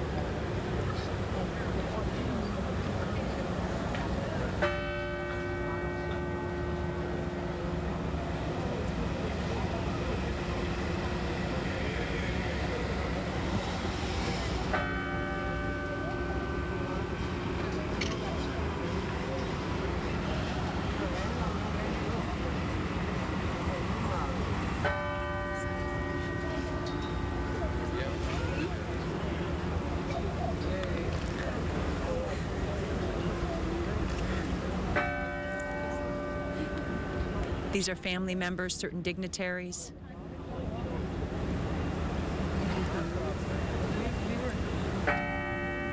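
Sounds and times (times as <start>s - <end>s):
church bell tolling: 4.6s - 11.2s, 14.6s - 18.4s, 24.8s - 29.8s, 34.9s - 37.7s, 45.0s - 45.9s.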